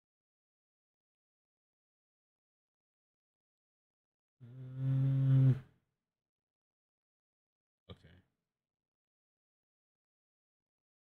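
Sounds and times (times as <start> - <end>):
man humming: 4.4 - 5.6.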